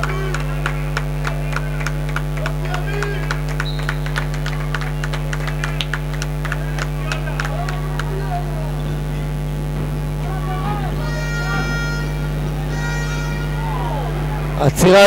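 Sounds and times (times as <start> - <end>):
electrical mains hum: 0.0 - 15.0
scattered voices: 0.0 - 15.0.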